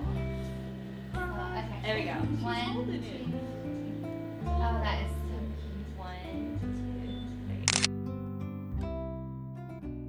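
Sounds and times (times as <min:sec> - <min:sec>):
soft acoustic guitar music: 0:00.0 - 0:10.0
camera shutter click: 0:07.6 - 0:07.9.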